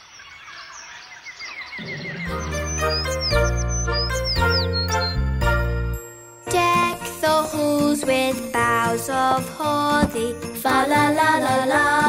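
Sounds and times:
small birds chirping: 0.0s - 5.6s.

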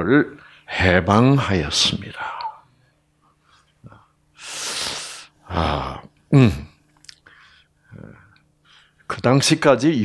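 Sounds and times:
man murmuring: 5.4s - 6.8s
faint breathing: 7.2s - 9.1s.

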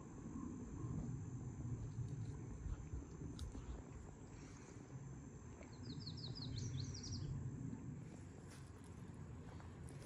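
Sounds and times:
low outdoor rumble: 0.0s - 10.0s
songbird chirping: 5.6s - 7.4s.

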